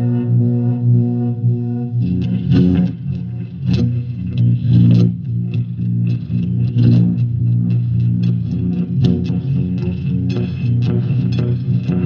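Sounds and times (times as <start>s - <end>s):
guitar picking low notes: 0.0s - 12.0s.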